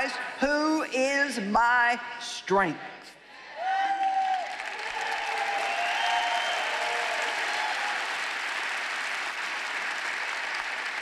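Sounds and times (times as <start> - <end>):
audience applauding: 3.6 - 11.0.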